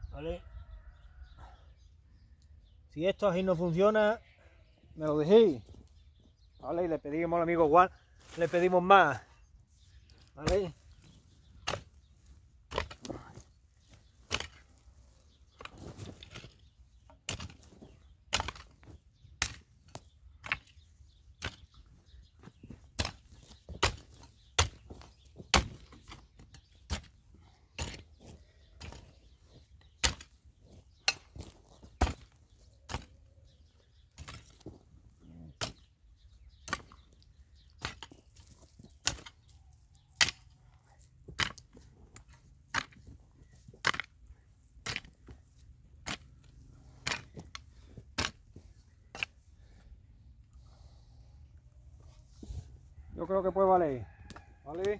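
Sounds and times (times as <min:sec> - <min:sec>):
hoe striking stony soil: 0:11.6 - 0:12.0, 0:12.6 - 0:13.4, 0:14.2 - 0:14.8, 0:17.2 - 0:33.2, 0:34.0 - 0:34.9, 0:35.5 - 0:39.5, 0:41.2 - 0:44.2, 0:44.8 - 0:49.4.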